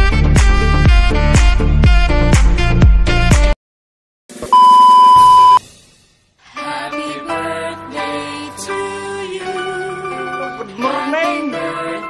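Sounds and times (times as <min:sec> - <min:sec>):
electronic beep: 0:04.5 - 0:05.6.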